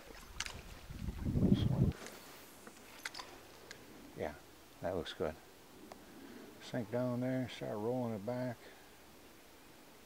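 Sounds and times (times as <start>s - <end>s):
microphone handling rumble: 0.5s - 2.1s.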